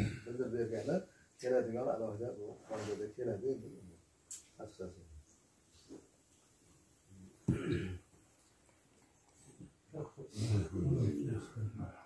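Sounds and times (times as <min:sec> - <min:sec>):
man's low gravelly voice: 0:10.0 - 0:12.0.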